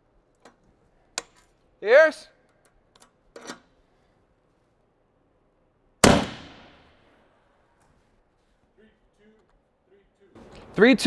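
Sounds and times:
gunshot crack: 0:06.0 - 0:06.9.

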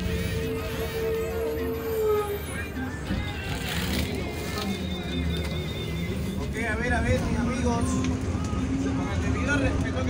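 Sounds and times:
music playing: 0:00.0 - 0:09.9
bus rumbling: 0:00.0 - 0:10.0.

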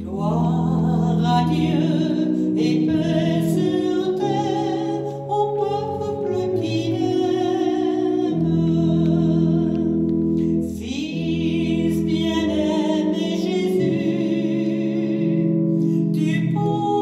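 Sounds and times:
held instrumental chords: 0:00.0 - 0:17.0
woman singing a hymn: 0:00.0 - 0:17.0.

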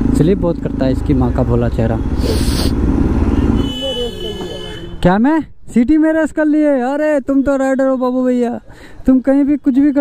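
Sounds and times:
motorcycle engine: 0:00.0 - 0:04.8.

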